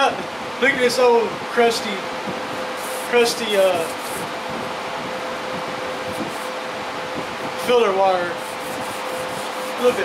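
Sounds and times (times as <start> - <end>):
fan-like machine hum: 0.0 - 10.0.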